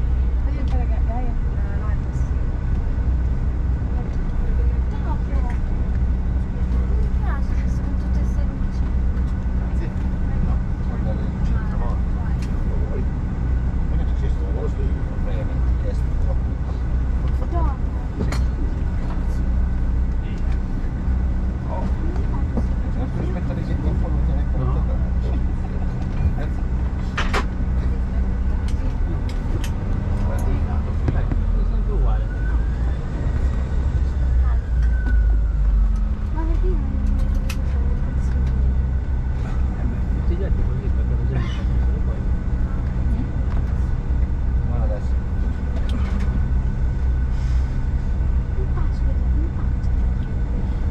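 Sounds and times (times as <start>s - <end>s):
deep rumble: 0.0s - 50.9s
jet engines droning: 0.0s - 50.9s.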